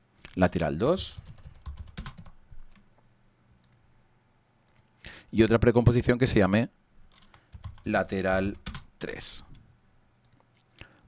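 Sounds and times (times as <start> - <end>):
computer keyboard keystrokes: 0.6 - 2.9, 7.1 - 8.9.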